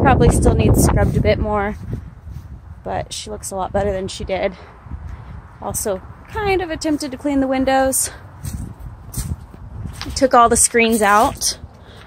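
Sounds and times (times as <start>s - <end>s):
footsteps crunching on gravel: 8.4s - 12.0s.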